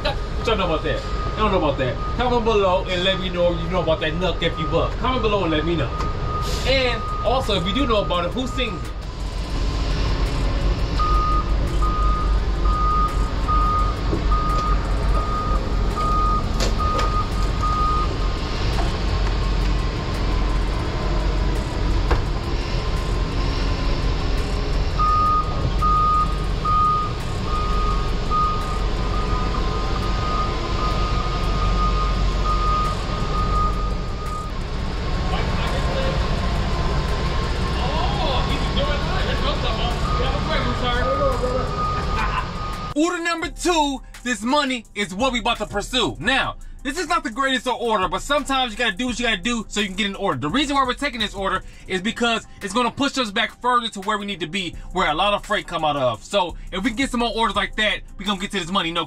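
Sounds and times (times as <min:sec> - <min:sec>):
forklift warning alarm beeping: 0:00.0 - 0:09.2, 0:10.9 - 0:18.5, 0:24.4 - 0:34.7, 0:38.5 - 0:43.0
steady low rumble: 0:00.0 - 0:59.0.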